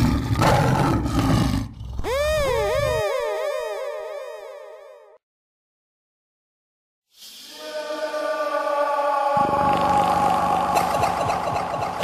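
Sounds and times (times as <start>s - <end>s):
percussion hits: 10.5s - 12.0s.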